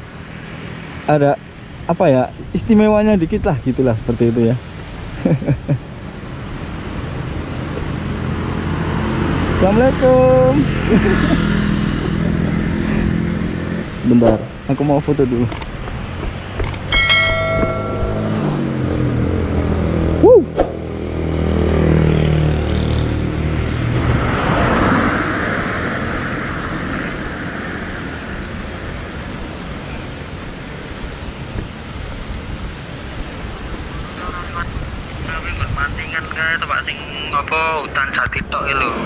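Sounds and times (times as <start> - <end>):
vehicle engine hum passing: 4.6 - 39.0
sharp knock: 16.6 - 18.6.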